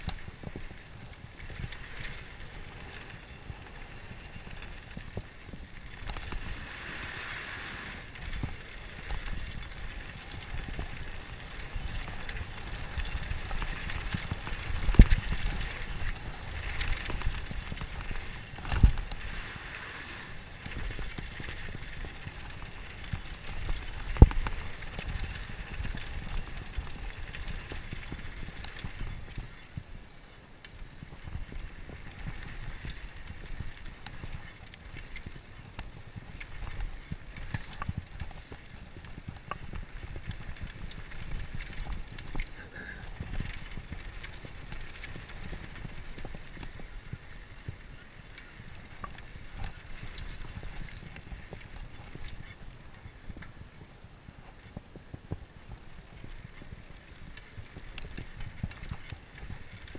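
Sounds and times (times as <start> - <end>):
bike rattling over bumps: 0.0 - 59.9
bike tyres on dirt trail: 0.0 - 59.9.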